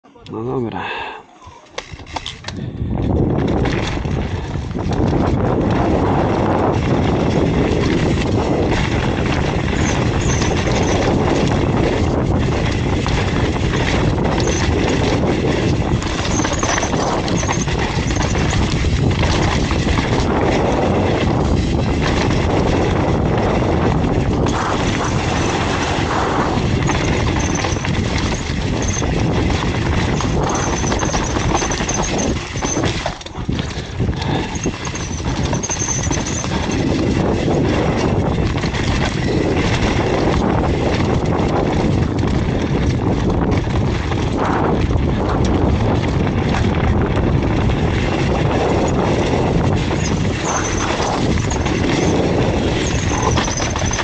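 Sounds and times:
mountain bike rattling over rocks: 1.8 - 54.0.

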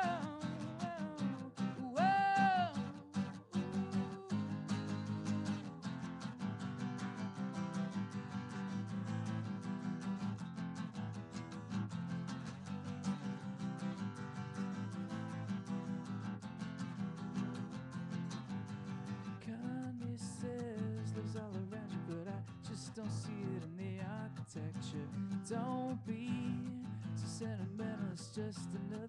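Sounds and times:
person singing: 0.0 - 5.9, 19.4 - 29.0
acoustic guitar strumming: 0.0 - 29.0.

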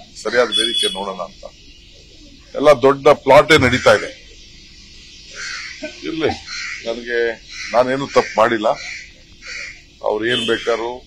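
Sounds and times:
bird cawing: 3.5 - 10.9.

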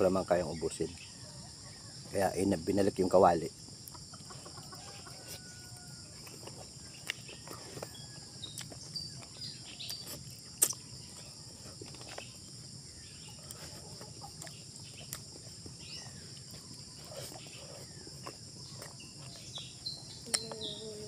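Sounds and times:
high insect drone: 0.0 - 21.0
chewing and lip-smacking: 6.1 - 12.5, 13.4 - 20.7
bird calls: 12.1 - 21.0.

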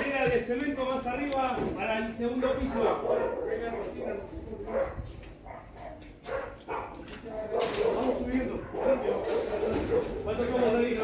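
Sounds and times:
dog barking: 2.6 - 4.0, 4.6 - 10.2.

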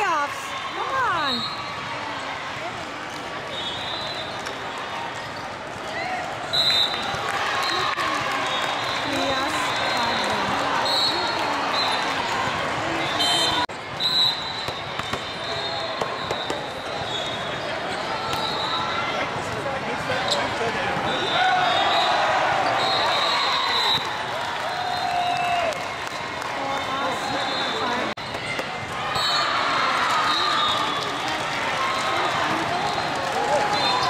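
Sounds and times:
crowd talking and calling: 0.0 - 34.0
volleyball hits: 14.6 - 16.9, 28.2 - 29.2.

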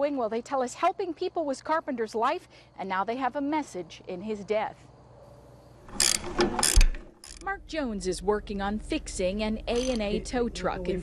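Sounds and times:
ratchet clicking: 5.9 - 7.5, 9.7 - 10.1.

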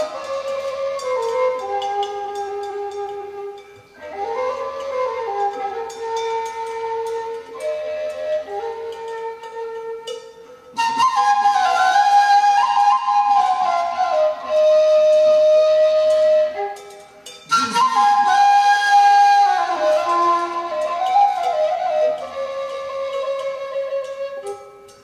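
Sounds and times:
wooden flute melody: 0.0 - 25.0.

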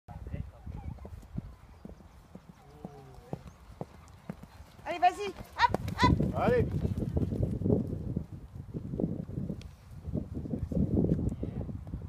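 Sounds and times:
hooves cantering on sand: 0.6 - 11.3.

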